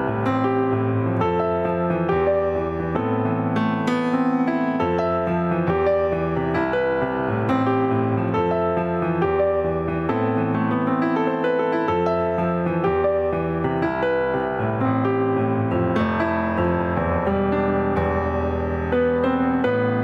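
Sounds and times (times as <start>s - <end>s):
slow piano chords: 0.0s - 20.0s.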